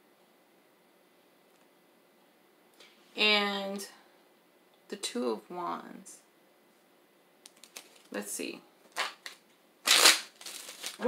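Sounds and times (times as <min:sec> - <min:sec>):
cards being shuffled: 0:07.5 - 0:08.2, 0:08.9 - 0:11.0.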